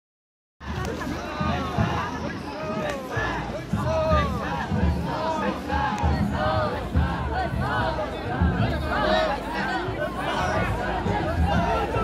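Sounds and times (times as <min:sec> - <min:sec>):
group of men chanting: 0:03.1 - 0:12.0.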